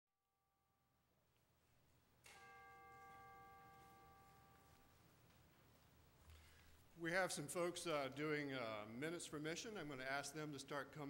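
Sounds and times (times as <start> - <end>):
faint bell chime ringing: 2.2 - 5.4.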